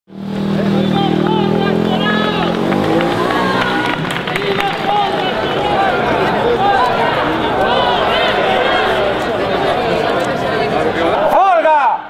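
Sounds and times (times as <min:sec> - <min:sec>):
crowd talking: 0:00.4 - 0:12.0.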